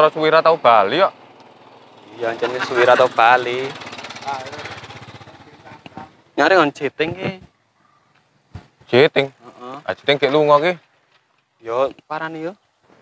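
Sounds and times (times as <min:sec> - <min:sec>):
small engine puttering: 0:00.6 - 0:06.3.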